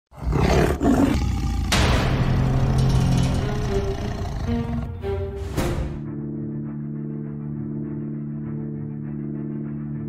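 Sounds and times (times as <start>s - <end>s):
tiger roar: 0.1s - 5.0s.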